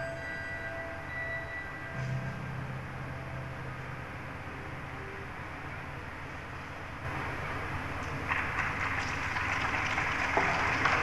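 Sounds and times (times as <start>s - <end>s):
high bell-like tones: 0.0s - 3.7s
steady low hum: 0.0s - 11.0s.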